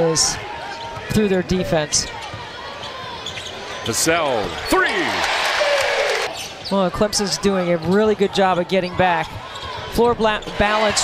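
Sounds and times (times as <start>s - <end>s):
arena background noise: 0.0s - 11.0s.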